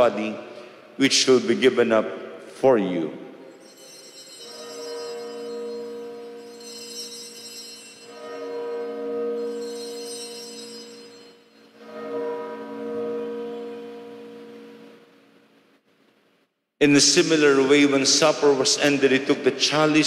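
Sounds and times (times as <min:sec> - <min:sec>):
bells ringing: 0:03.3 - 0:14.9.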